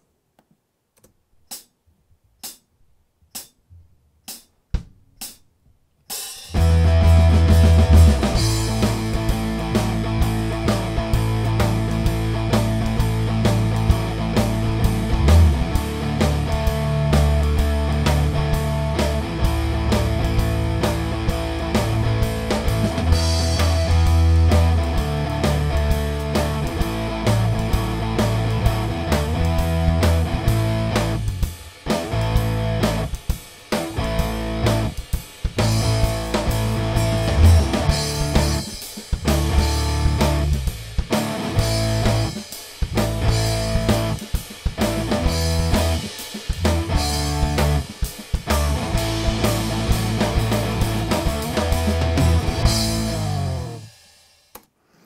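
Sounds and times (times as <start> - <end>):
rock music with drums and guitars: 6.1 - 54.3.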